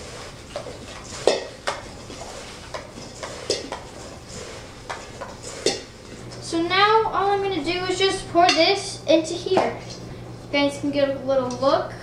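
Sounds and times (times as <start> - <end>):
girl's voice: 6.4 - 12.0.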